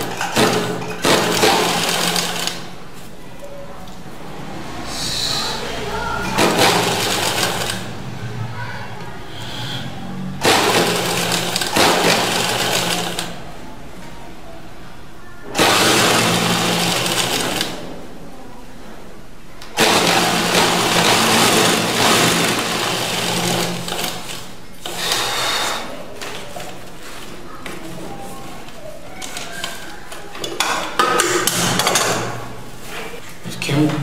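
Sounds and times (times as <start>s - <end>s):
sewing machine stitching: 0.0s - 2.7s, 6.2s - 8.1s, 9.4s - 13.4s, 15.5s - 17.9s, 19.8s - 25.9s.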